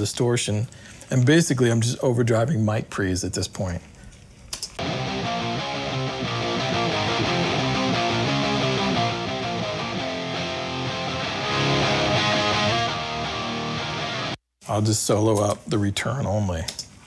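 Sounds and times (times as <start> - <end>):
distorted electric guitars: 4.8 - 14.4
hard rock music: 4.8 - 14.4.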